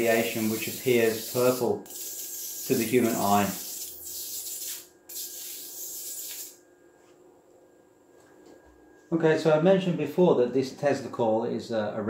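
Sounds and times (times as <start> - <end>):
tesla coil sparks hissing: 0.0 - 6.6.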